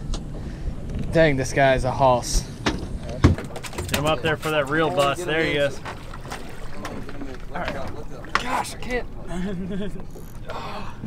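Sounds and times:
water noise: 0.0s - 11.0s
wind: 0.0s - 11.0s.

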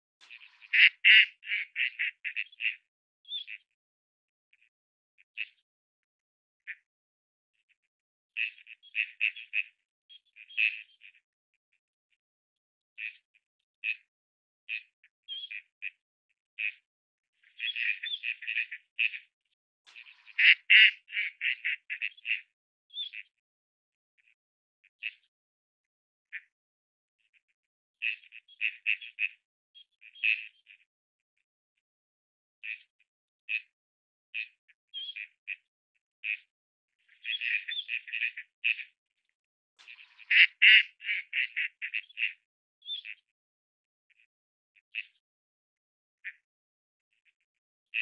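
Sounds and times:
ducks quacking: 0.2s - 2.9s, 19.9s - 22.5s, 37.1s - 38.9s, 39.8s - 42.4s.

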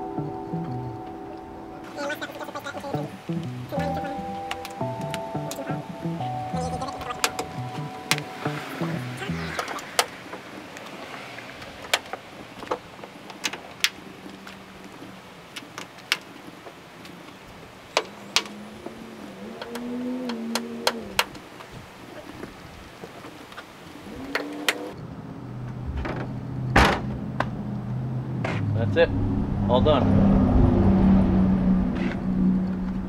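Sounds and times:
background music: 0.0s - 9.8s.

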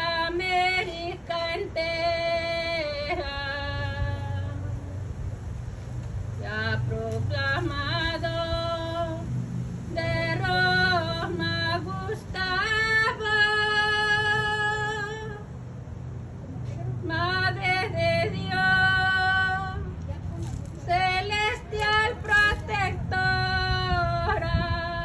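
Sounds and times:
woman singing: 0.0s - 4.9s, 6.4s - 9.2s, 9.9s - 15.4s, 17.0s - 20.0s, 20.8s - 25.0s.

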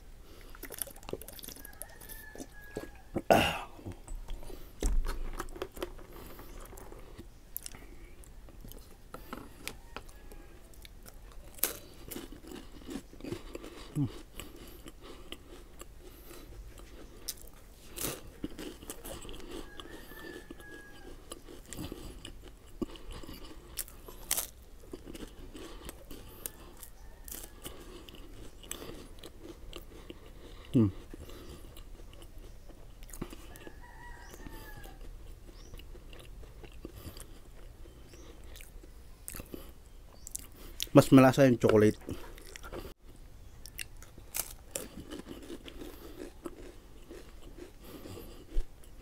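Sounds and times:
chewing crisp wafer sticks: 0.2s - 49.0s.

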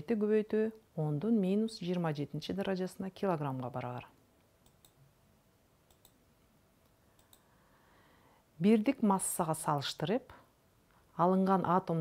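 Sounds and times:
faint short clicks: 6.8s - 7.5s.

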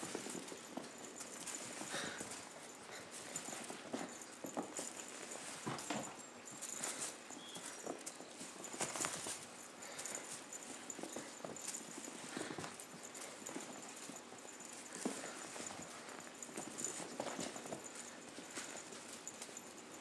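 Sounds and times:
kittens' paws scampering on carpet: 0.0s - 20.0s.

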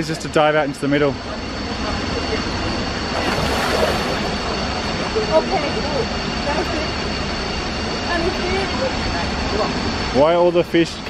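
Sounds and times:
person diving into water: 3.1s - 5.1s
waterfall rushing: 3.2s - 4.6s.

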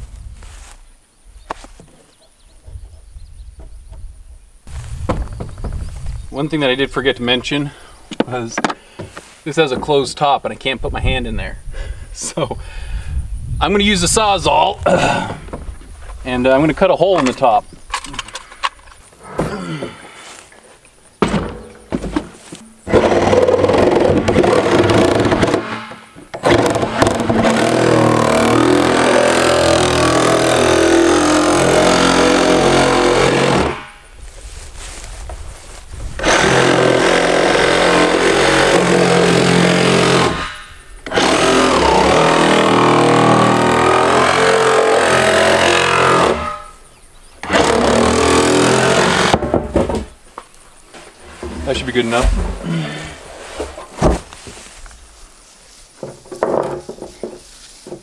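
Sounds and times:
reciprocating saw cutting plastic: 22.9s - 33.9s, 36.2s - 46.8s, 47.4s - 49.4s.

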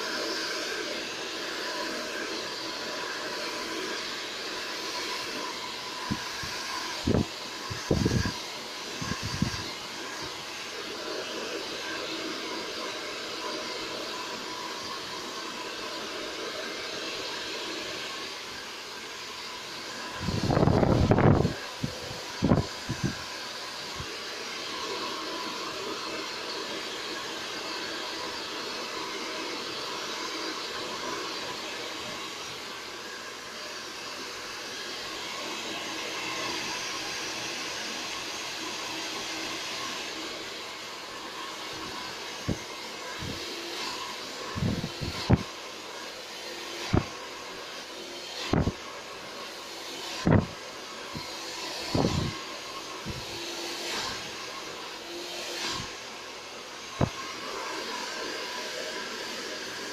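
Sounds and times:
hair dryer running: 0.0s - 59.9s.

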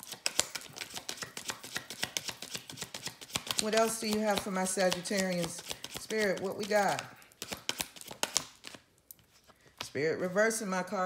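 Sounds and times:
cards shuffling and clicking: 0.0s - 10.0s.

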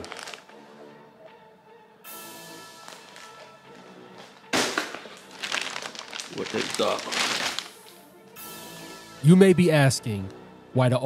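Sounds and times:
plastic packaging crinkling: 0.0s - 0.6s, 2.8s - 8.0s
background music with sustained tones: 0.0s - 11.0s.

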